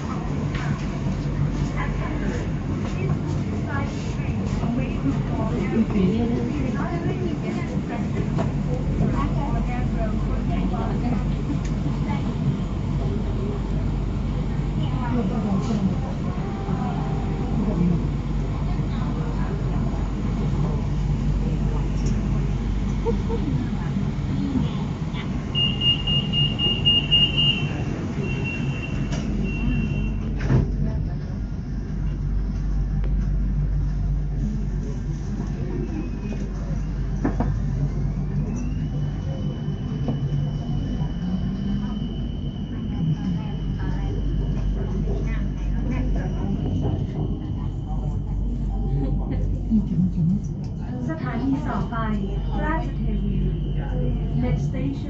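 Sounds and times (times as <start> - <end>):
train low rumble: 0.0 - 55.0.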